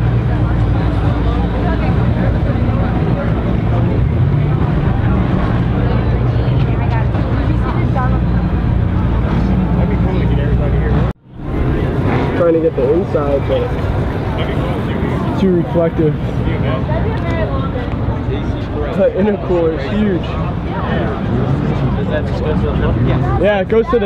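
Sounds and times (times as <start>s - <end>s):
crowd chatter: 0.0s - 24.0s.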